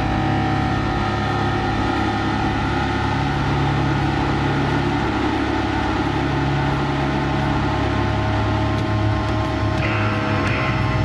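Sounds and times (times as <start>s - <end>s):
low droning music: 0.0s - 11.0s
higher tone: 7.0s - 11.0s.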